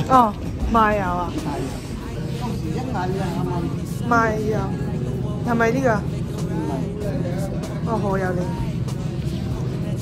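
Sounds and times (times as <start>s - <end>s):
woman speaking: 0.0s - 7.1s
low background hum: 0.0s - 10.0s.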